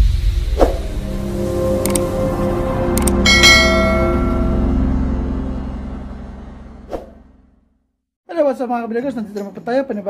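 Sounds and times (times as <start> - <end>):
steady low rumble: 0.0 - 7.6
bell-like chime: 3.0 - 5.3.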